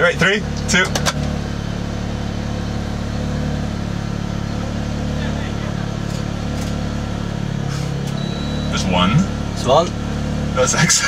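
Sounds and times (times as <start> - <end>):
car engine idling hum: 0.0 - 11.0.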